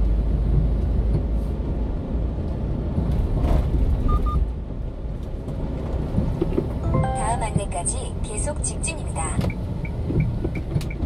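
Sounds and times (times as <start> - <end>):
truck engine and tyres rumbling: 0.0 - 11.0.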